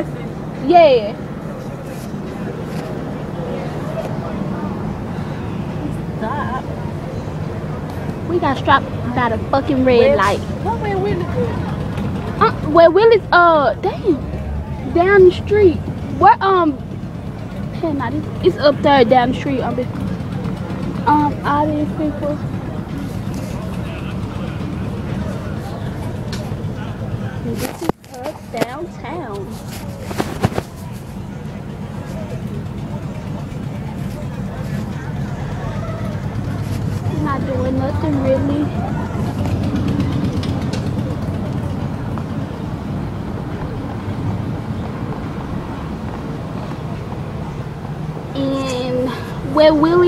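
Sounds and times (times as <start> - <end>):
car engine and tyres rumbling: 0.0 - 50.0.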